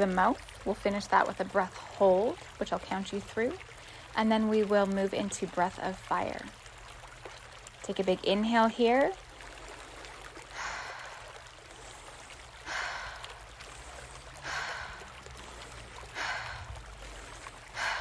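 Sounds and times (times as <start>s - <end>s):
woman breathing deeply: 10.5s - 18.0s.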